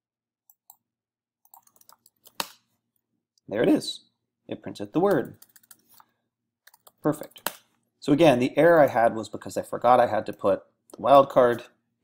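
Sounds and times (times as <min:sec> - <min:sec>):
keyboard typing: 0:01.4 - 0:02.5, 0:05.1 - 0:06.0, 0:06.6 - 0:07.6.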